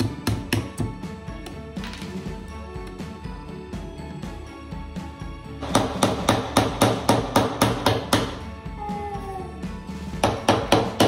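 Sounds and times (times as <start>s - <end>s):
hammer striking nail into wood: 0.0s - 1.0s, 5.6s - 8.4s, 10.2s - 11.0s.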